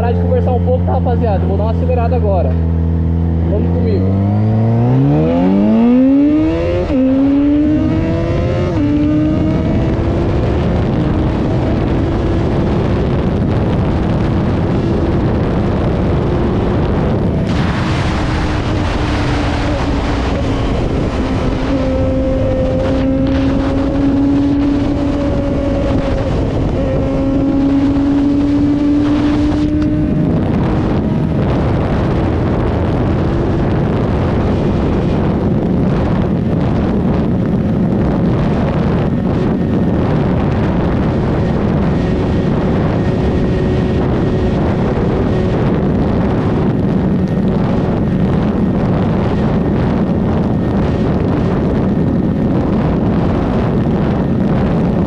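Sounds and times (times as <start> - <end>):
motorcycle engine at full throttle: 0.0 - 55.0
wind rush on microphone: 0.0 - 55.0.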